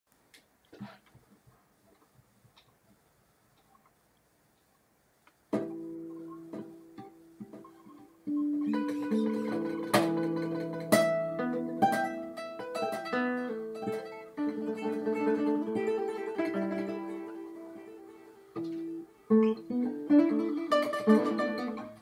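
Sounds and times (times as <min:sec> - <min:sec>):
fingerstyle acoustic guitar: 0:05.5 - 0:22.0.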